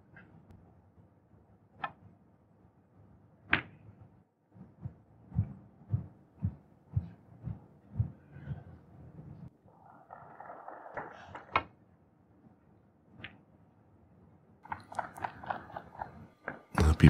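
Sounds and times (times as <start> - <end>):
soft low thumps: 4.8 - 9.4.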